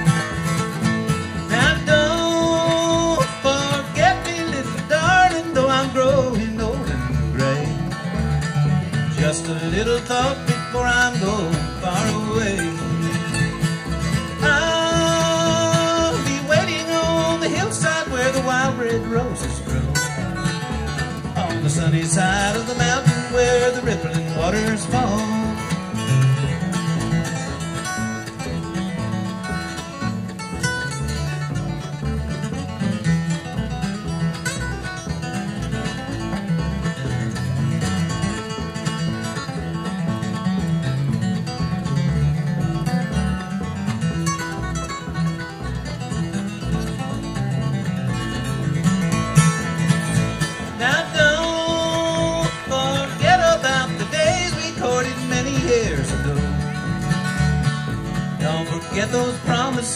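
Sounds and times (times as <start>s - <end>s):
flatpicked acoustic guitar lead: 0.0s - 59.9s
plucked upright bass: 0.0s - 59.9s
strummed rhythm guitar: 0.0s - 59.9s.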